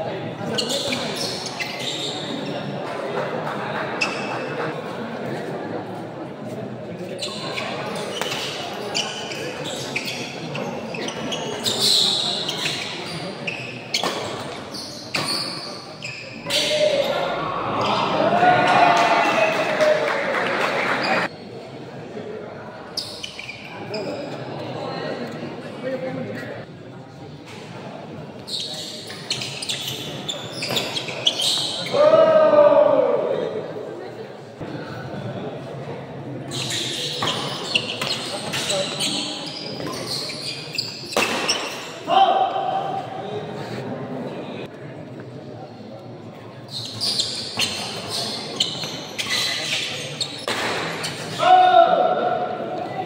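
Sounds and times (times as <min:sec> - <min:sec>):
crowd chatter: 0:00.0 - 0:53.0
crowd shouting: 0:16.6 - 0:21.3.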